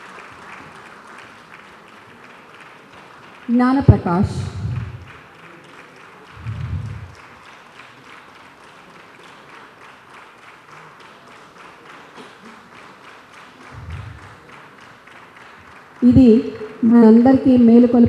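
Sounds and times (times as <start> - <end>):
audience applauding: 0.0 - 18.0.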